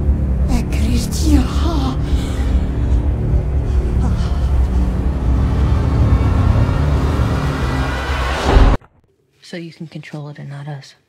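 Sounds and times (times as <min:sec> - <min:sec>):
deep droning rumble: 0:00.0 - 0:08.8
held low orchestral tones: 0:00.0 - 0:08.8.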